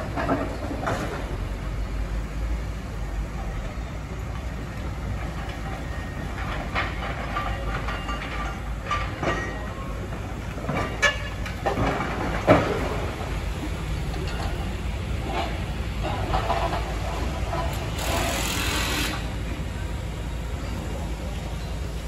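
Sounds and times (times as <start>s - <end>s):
machinery rumbling: 0.0s - 22.0s
clanks and knocks: 5.2s - 13.4s, 14.0s - 19.3s.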